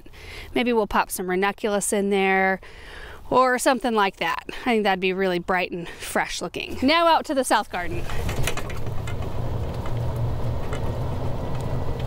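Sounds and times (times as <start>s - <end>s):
utility vehicle low rumble: 7.7s - 12.0s.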